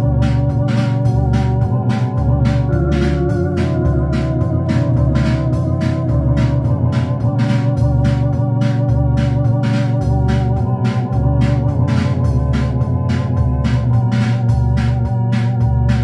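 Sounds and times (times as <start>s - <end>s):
drum machine cymbal ticks: 0.0s - 16.0s
electronic organ chords: 0.0s - 16.0s.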